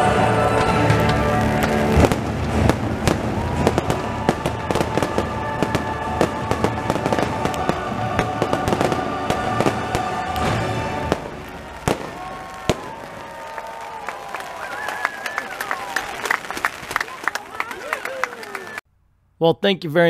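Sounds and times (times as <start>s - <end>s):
fireworks cracks and bangs: 0.5s - 18.2s.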